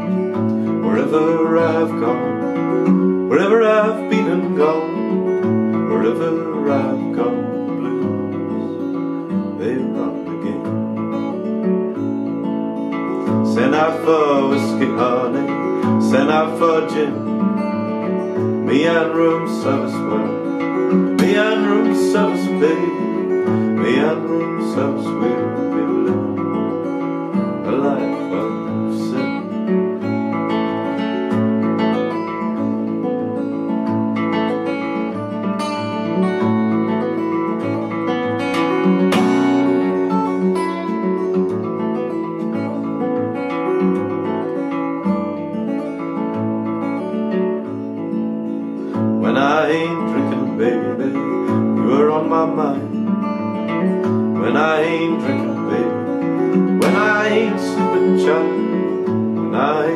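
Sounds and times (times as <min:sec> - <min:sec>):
fingerstyle acoustic guitar: 0:00.0 - 0:59.9
man singing: 0:00.1 - 0:11.3, 0:13.1 - 0:30.0, 0:48.6 - 0:59.9.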